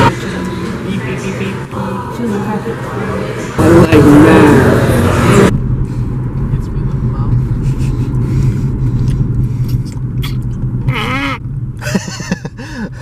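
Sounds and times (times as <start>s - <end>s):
car engine rumble: 0.0s - 13.0s
road noise: 0.0s - 13.0s.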